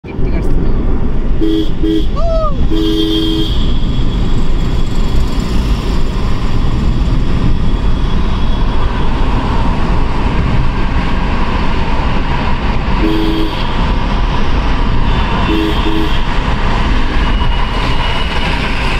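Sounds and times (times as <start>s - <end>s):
road and tyre noise in tunnel: 0.0s - 18.9s
vehicle horn beeps: 1.4s - 4.0s, 13.0s - 13.8s, 15.4s - 16.4s.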